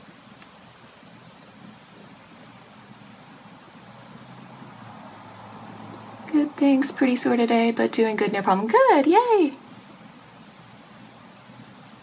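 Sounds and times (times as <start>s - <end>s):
background hiss: 0.0s - 12.0s
faint low hum: 0.0s - 12.0s.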